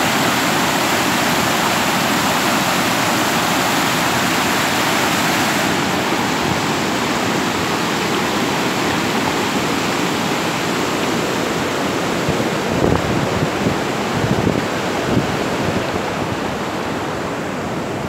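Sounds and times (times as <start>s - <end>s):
floodwater rushing: 0.0s - 18.0s.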